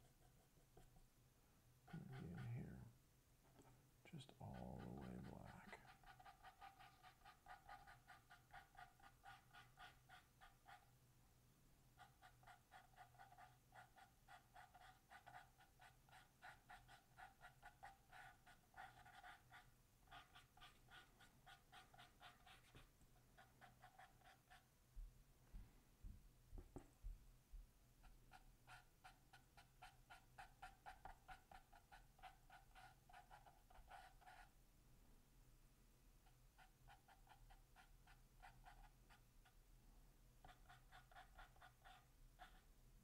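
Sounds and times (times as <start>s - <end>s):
paintbrush dabbing on canvas: 1.9s - 2.8s, 4.5s - 10.9s, 12.0s - 24.7s.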